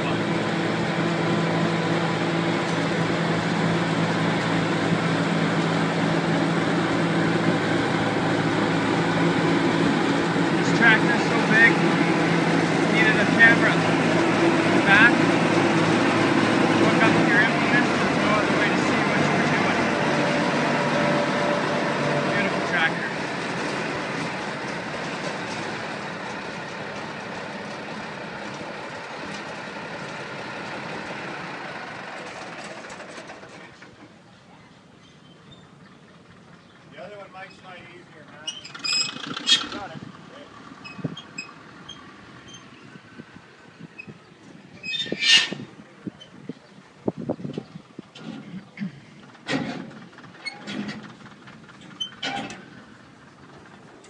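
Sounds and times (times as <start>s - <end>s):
diesel tractor engine idling: 0.0s - 54.0s
short high squeaks: 38.4s - 39.8s, 40.8s - 42.8s, 44.8s - 46.4s, 51.9s - 52.6s.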